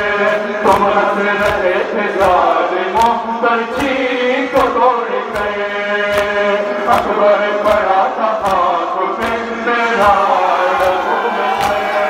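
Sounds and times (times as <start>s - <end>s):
crowd singing along: 0.0s - 12.0s
men chanting a lament: 0.0s - 12.0s.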